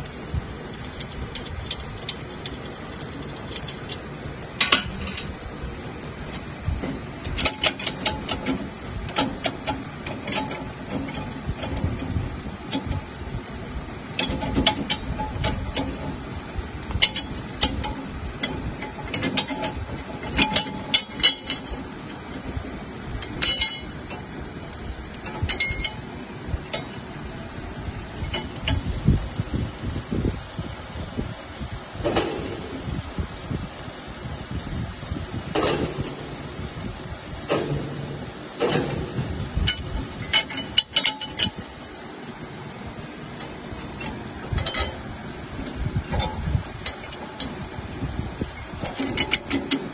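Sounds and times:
low mechanical hum: 0.0 - 49.9
metal bars clinking and knocking: 0.7 - 5.4, 6.8 - 12.1, 14.2 - 16.2, 16.9 - 22.2, 23.2 - 26.0, 28.2 - 28.9, 37.5 - 41.7, 43.4 - 45.0, 48.8 - 49.9.

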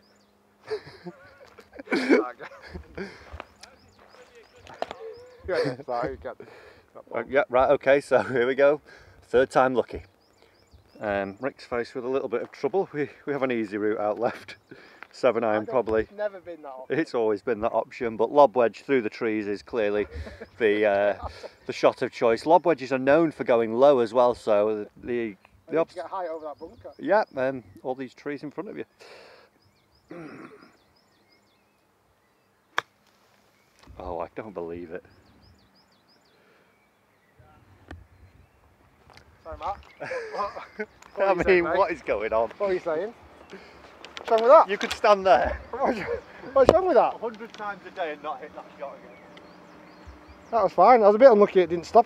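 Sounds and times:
faint bird chirps: 0.0 - 1.8, 2.5 - 6.0, 8.8 - 12.0, 24.8 - 51.9
faint high bird chirps: 0.0 - 1.8, 3.2 - 5.9
person chuckling: 0.6 - 3.4, 5.0 - 5.9, 20.0 - 20.6, 21.2 - 21.6, 40.0 - 40.9, 45.7 - 46.6.

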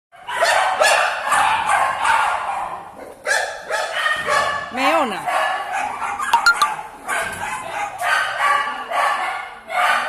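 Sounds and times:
dog barking: 0.2 - 10.0.

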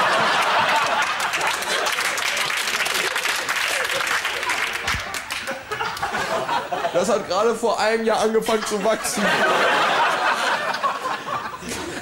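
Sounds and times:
laughter: 0.0 - 2.1, 3.0 - 7.0, 8.5 - 12.0
small group clapping: 0.0 - 6.4.

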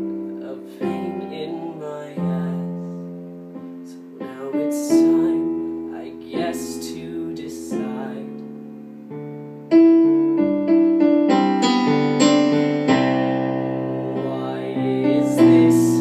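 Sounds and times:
piano chords on digital keyboard: 0.0 - 16.0.

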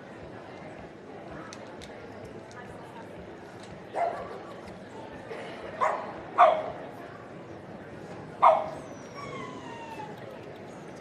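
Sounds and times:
dog barking: 5.8 - 6.7, 8.4 - 8.8.

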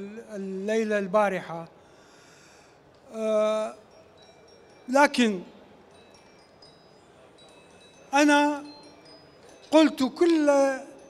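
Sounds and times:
faint high ringing tones: 0.0 - 11.0.

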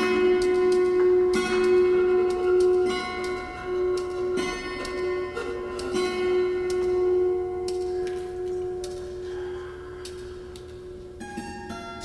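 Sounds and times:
sharp percussion clicks: 0.0 - 9.3.

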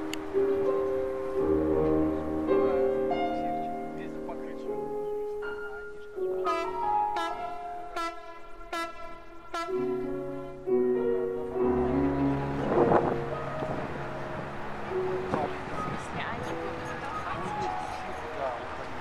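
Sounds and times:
low drone: 0.0 - 19.0
sustained chords: 0.0 - 19.0.

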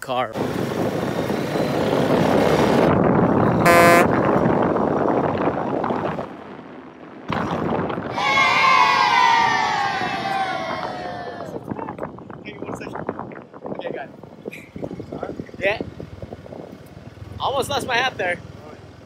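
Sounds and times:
rough wind: 0.0 - 18.4
atv engine running: 0.4 - 8.0, 14.7 - 19.0
short steady tone: 3.6 - 4.1.

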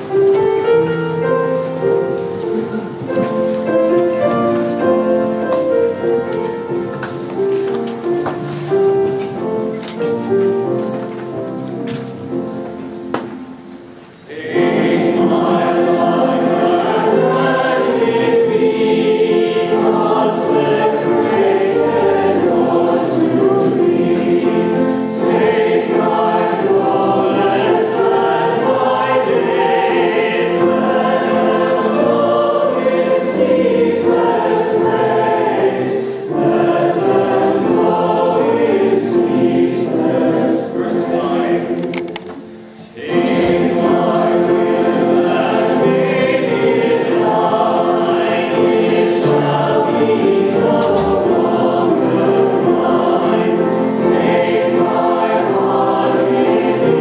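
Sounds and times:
congregation singing a hymn: 0.0 - 57.0.

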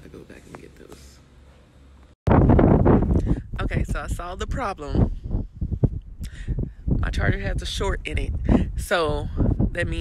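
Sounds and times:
wind buffeting microphone: 2.3 - 10.0.

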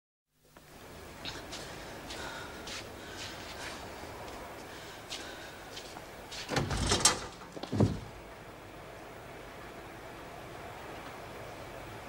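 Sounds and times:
heavy door thud: 6.5 - 8.2
latch and door rattling: 6.5 - 8.2.

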